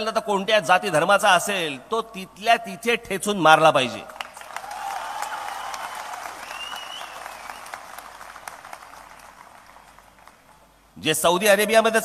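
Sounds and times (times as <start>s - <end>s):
audience applauding: 4.2s - 10.6s
rising whistle: 6.4s - 7.8s.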